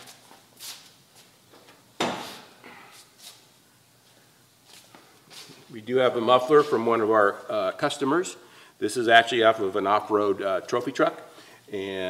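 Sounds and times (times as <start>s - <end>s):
footsteps: 4.0s - 7.4s.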